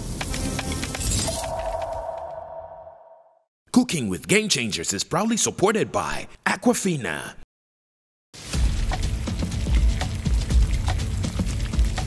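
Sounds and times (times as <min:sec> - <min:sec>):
held tone: 0:01.2 - 0:03.4.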